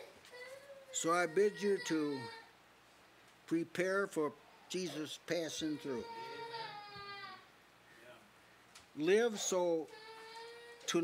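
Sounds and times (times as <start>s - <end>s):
elderly man's voice: 0.9s - 2.4s, 3.5s - 6.4s, 9.0s - 10.0s.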